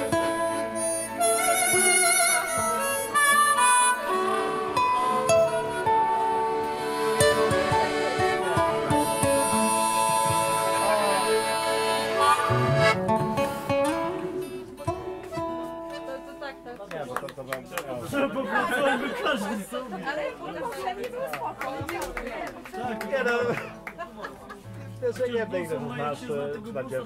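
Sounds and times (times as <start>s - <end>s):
low bowed string instrument: 0.0s - 15.9s
harmonica: 0.0s - 16.3s
accordion: 0.0s - 17.0s
acoustic guitar: 0.0s - 17.1s, 22.0s - 27.0s
low voices chattering: 0.0s - 27.0s.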